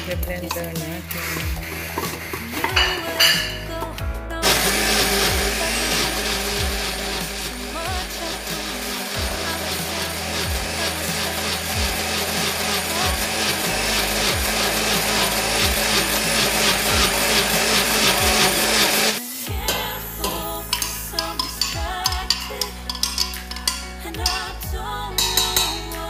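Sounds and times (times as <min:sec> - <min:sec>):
blender running: 0:04.4 - 0:19.3.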